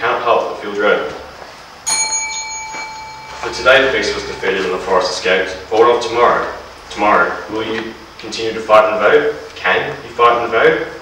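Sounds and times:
bell-like ding: 0:01.9 - 0:05.7.

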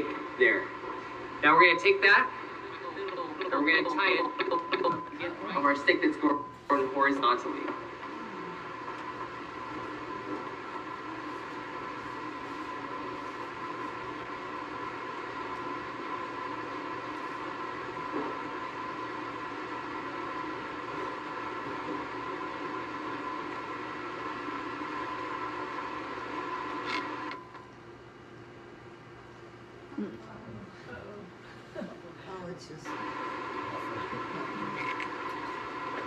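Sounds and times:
steady hum of held tones: 0:00.0 - 0:36.0.

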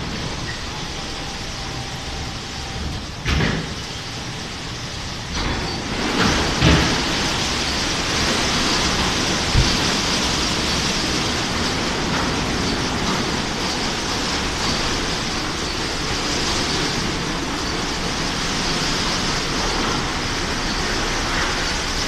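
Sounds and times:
water spraying: 0:00.0 - 0:22.0.

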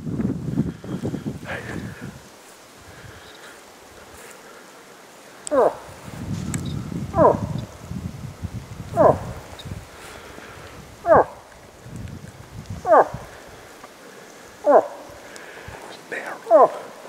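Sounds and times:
footsteps through dry grass: 0:00.0 - 0:07.1, 0:07.7 - 0:14.6
moose grunts: 0:01.4 - 0:02.2, 0:05.4 - 0:06.0, 0:07.1 - 0:07.7, 0:08.9 - 0:09.4, 0:11.0 - 0:11.4, 0:12.8 - 0:17.0.

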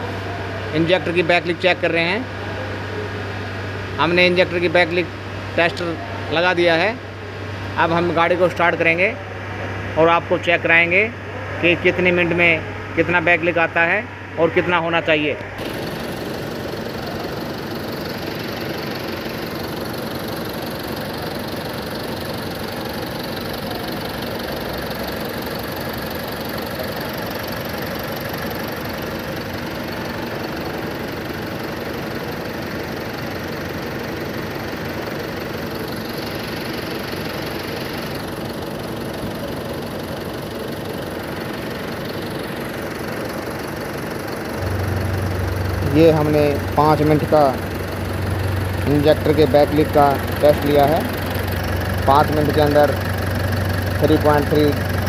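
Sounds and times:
diesel engine idling: 0:00.0 - 0:55.0.

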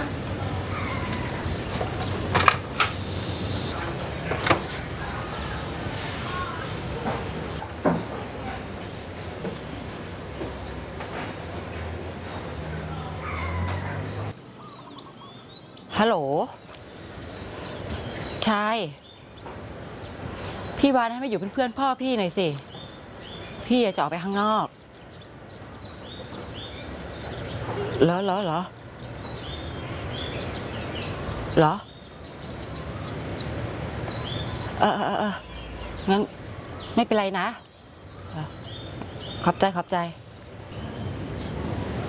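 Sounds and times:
small birds chirping: 0:00.0 - 0:10.7, 0:11.6 - 0:42.0
outdoor ambience: 0:00.0 - 0:42.0.

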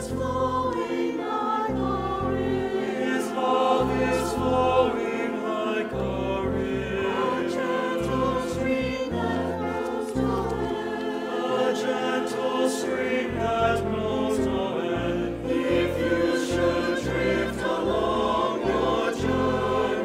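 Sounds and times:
choir singing a hymn: 0:00.0 - 0:20.0
instrumental accompaniment: 0:00.0 - 0:20.0
low bass line: 0:05.9 - 0:07.2.

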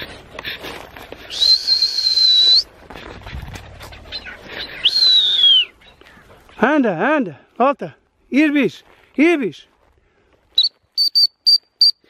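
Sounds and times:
short high-pitched whistle pips: 0:01.3 - 0:02.7, 0:04.8 - 0:05.7, 0:10.6 - 0:12.0.

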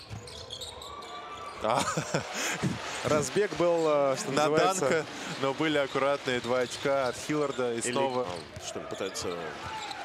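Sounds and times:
shoe squeak: 0:00.0 - 0:01.6, 0:06.7 - 0:10.0.

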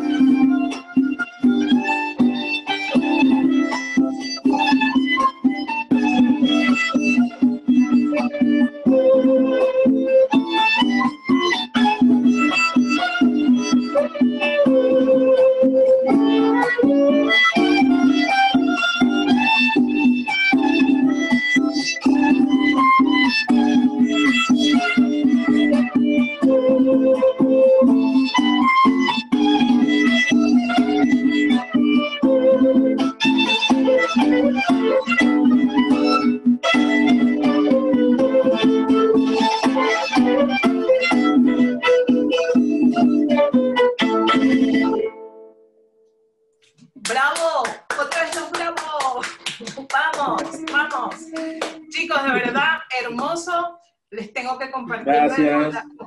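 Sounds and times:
violin melody: 0:00.0 - 0:45.5, 0:50.0 - 0:53.3, 0:54.9 - 0:56.0
strummed guitar: 0:00.0 - 0:45.6, 0:48.2 - 0:53.3, 0:54.9 - 0:56.0.

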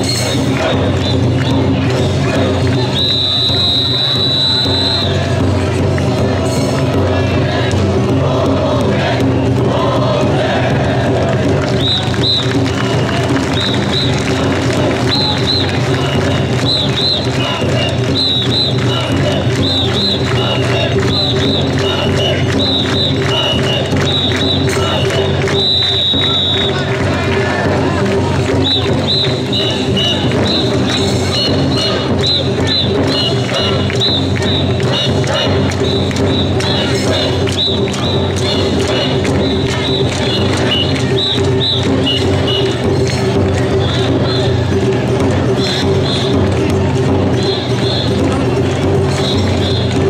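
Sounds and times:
crowd chanting: 0:00.0 - 0:50.0
crowd noise: 0:00.0 - 0:50.0
shrill whistle blasts: 0:02.9 - 0:05.2, 0:11.8 - 0:14.4, 0:15.0 - 0:20.5, 0:21.1 - 0:26.8, 0:28.6 - 0:35.0, 0:37.5 - 0:38.3, 0:39.4 - 0:42.7.

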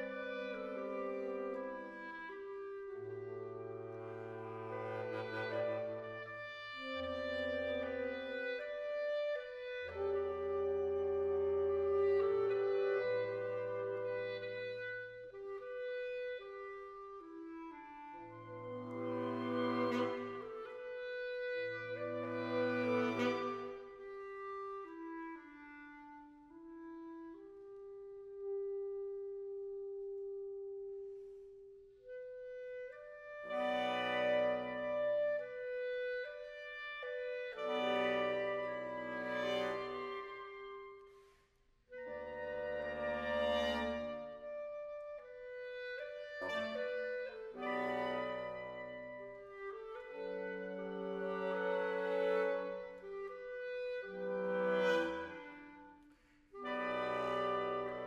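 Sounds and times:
woodwind ensemble playing chords: 0:00.0 - 0:41.2, 0:41.9 - 0:58.0.

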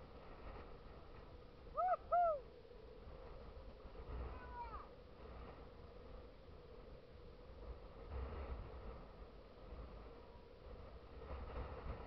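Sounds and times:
faint wind hiss: 0:00.0 - 0:12.0
bird hooting: 0:01.8 - 0:02.4.

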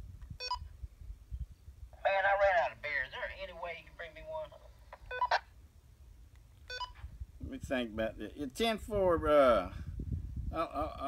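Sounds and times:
walkie-talkie electronic beeps: 0:05.0 - 0:05.4.

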